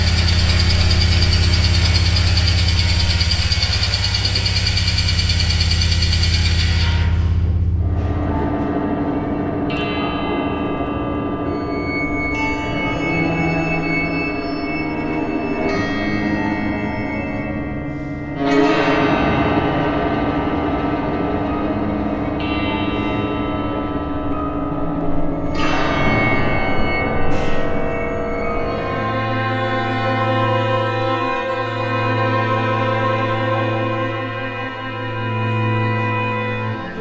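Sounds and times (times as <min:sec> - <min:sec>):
bell-like high tones: 0:11.4 - 0:18.6
string ensemble chords: 0:27.2 - 0:37.0.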